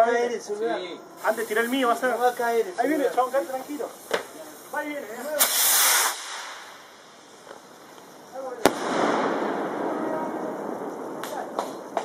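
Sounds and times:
firework hiss: 1.1 - 12.0
firework crackling: 1.2 - 12.0
sharp pops: 3.1 - 9.4, 11.1 - 12.0
firework bang: 4.0 - 4.4, 5.3 - 7.6, 8.4 - 12.0.

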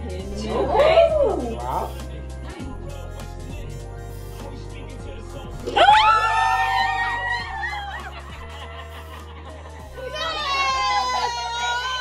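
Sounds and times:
background music: 0.0 - 12.0
women shrieking and squealing: 5.8 - 8.3, 10.0 - 12.0.

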